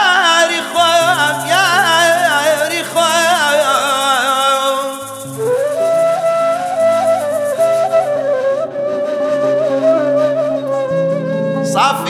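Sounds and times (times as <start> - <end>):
flute playing ornamented melody: 0.6 - 12.0.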